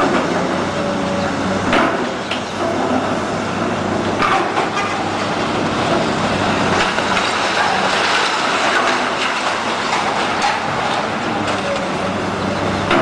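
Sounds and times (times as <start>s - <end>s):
excavator diesel engine: 0.0s - 13.0s
concrete crunching and clattering: 1.7s - 13.0s.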